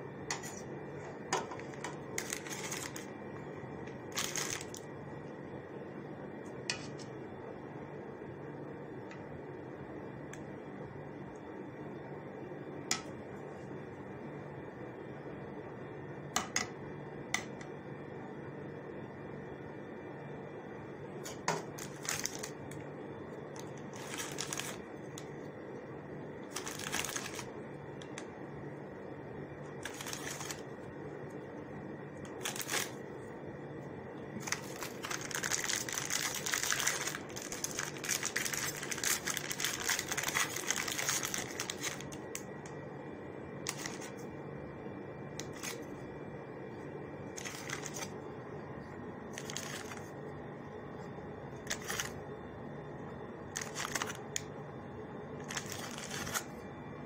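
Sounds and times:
faint steady hum: 0:00.0 - 0:57.0
plastic packaging crinkling: 0:01.4 - 0:03.2, 0:04.0 - 0:04.9, 0:21.3 - 0:22.8, 0:23.5 - 0:25.3, 0:26.5 - 0:27.5, 0:29.8 - 0:30.7, 0:32.3 - 0:33.0, 0:34.4 - 0:42.5, 0:43.7 - 0:44.1, 0:45.4 - 0:45.8, 0:47.4 - 0:48.2, 0:49.4 - 0:50.1, 0:51.7 - 0:52.2, 0:53.6 - 0:54.3, 0:55.4 - 0:56.5.

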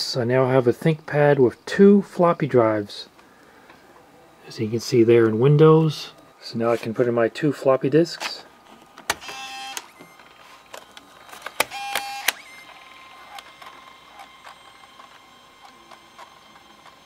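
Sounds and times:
faint steady whine: 0:00.0 - 0:17.0
disk drive whirring: 0:08.6 - 0:17.0
disk inserted with a click: 0:08.8 - 0:17.0.

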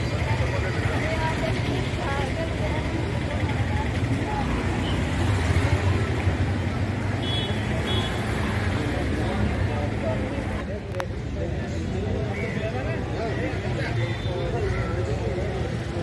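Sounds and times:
people's voices: 0:00.0 - 0:16.0.

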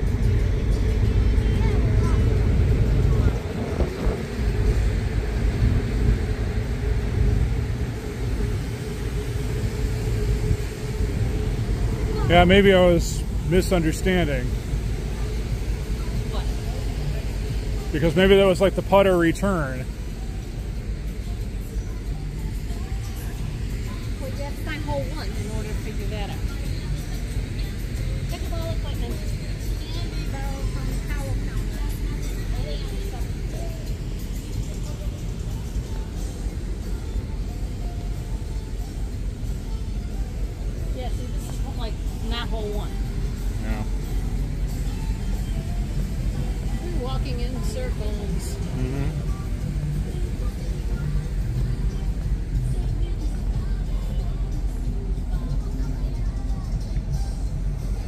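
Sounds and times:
background music: 0:00.0 - 0:58.0
faint voices: 0:00.0 - 0:58.0
steady low rumble: 0:00.0 - 0:58.0.

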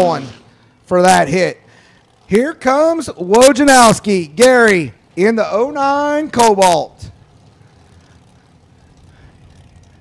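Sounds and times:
car engines rumbling: 0:00.0 - 0:10.0.

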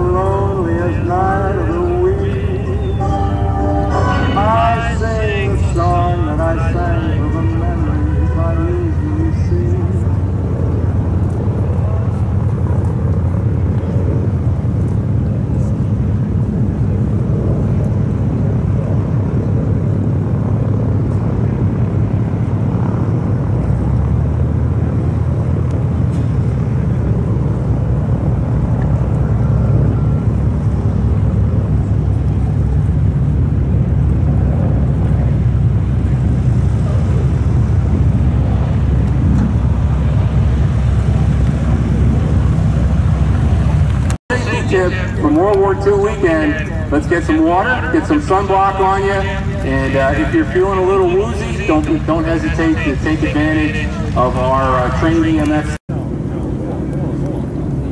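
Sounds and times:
aircraft engines droning: 0:00.0 - 0:57.9.

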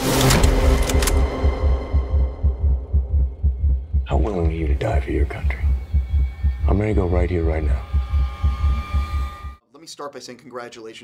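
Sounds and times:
deep throbbing bass pulse: 0:00.6 - 0:09.6.

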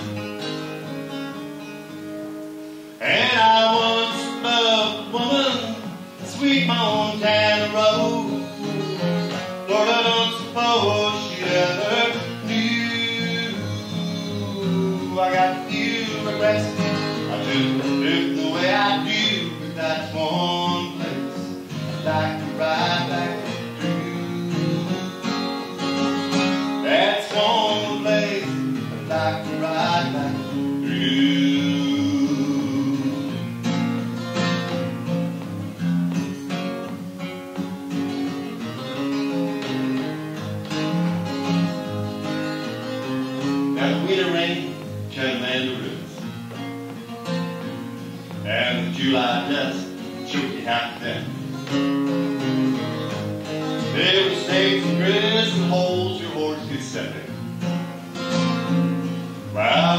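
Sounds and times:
acoustic guitar: 0:00.0 - 0:59.9
man singing: 0:03.0 - 0:33.6, 0:43.0 - 0:46.4, 0:48.3 - 0:52.2, 0:53.7 - 0:57.4, 0:59.4 - 0:59.9.

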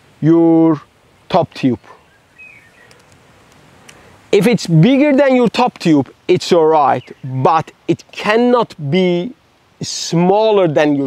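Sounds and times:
faint bird chirp: 0:01.5 - 0:03.2, 0:06.0 - 0:07.8.

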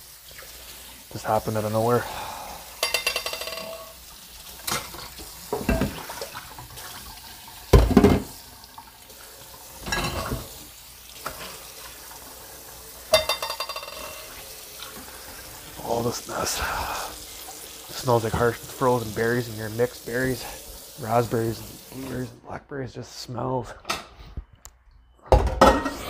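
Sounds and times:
faint steady hiss: 0:00.0 - 0:25.1
objects knocking and clattering: 0:02.8 - 0:04.0, 0:04.7 - 0:06.1, 0:07.7 - 0:08.3, 0:13.2 - 0:14.3, 0:25.3 - 0:26.0.

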